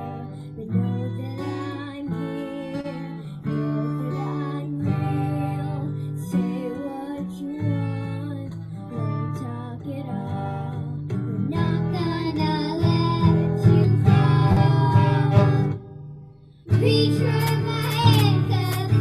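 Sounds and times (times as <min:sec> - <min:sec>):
girl singing into a microphone: 0:00.0 - 0:15.9, 0:16.7 - 0:19.0
acoustic guitar strumming: 0:00.0 - 0:19.0.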